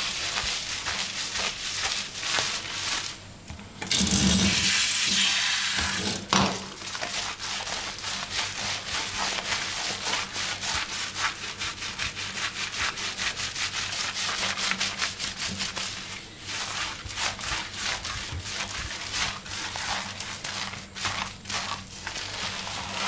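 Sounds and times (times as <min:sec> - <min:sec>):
fingers scrubbing wet hair: 0:00.0 - 0:03.2, 0:06.8 - 0:23.0.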